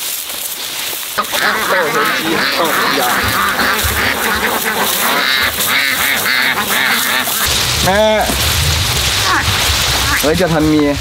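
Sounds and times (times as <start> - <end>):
ducks quacking: 1.2 - 10.9.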